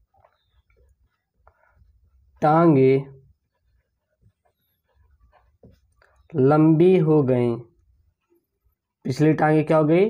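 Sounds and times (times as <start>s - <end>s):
marker pen scratching on paper: 3.2s - 6.4s.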